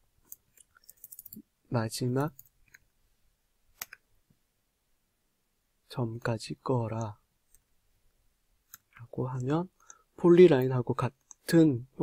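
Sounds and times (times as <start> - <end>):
man speaking: 1.7 - 2.4, 5.9 - 7.2, 9.0 - 12.0
faint keyboard and mouse clicks: 2.1 - 3.0, 3.7 - 4.4, 6.9 - 7.7, 8.6 - 11.6.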